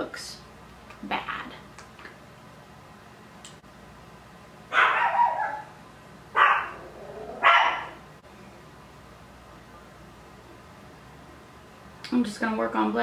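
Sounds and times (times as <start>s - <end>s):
dog barking: 4.7s - 5.8s, 6.4s - 6.8s, 7.4s - 8.0s.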